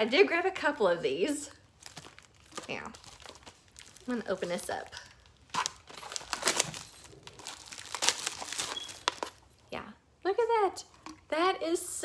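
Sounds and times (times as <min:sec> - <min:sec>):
packaging wrap crinkling and tearing: 0:01.7 - 0:09.5.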